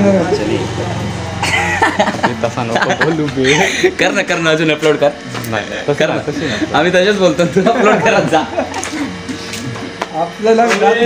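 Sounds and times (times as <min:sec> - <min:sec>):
men chatting and laughing: 0:00.0 - 0:11.0.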